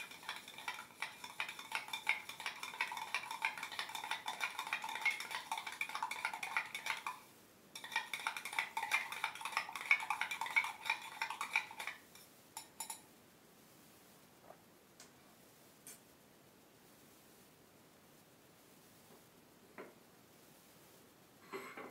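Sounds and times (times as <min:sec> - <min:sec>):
metal spoon clinking in tumbler: 0:00.0 - 0:07.2, 0:07.8 - 0:13.0.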